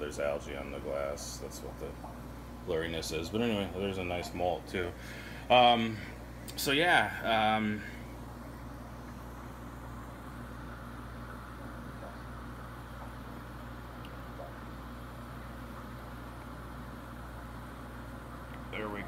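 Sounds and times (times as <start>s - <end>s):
equipment hum and hiss: 0.0s - 19.0s.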